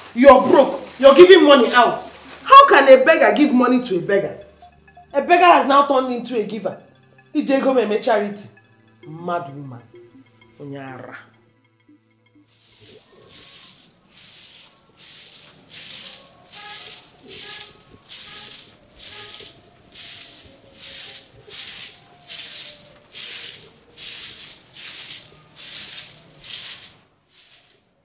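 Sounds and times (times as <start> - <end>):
broom sweeping sandy ground: 12.5 - 28.0.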